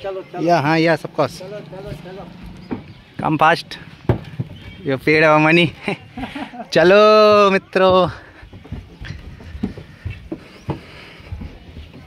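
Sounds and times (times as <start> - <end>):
footsteps on wooden boardwalk: 1.8 - 3.2, 3.8 - 4.8, 5.6 - 12.0.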